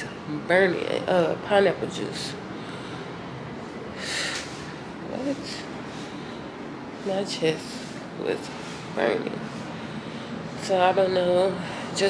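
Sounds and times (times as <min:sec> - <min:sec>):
woman breathing in: 0:02.5 - 0:03.3, 0:03.9 - 0:04.8, 0:09.6 - 0:10.5.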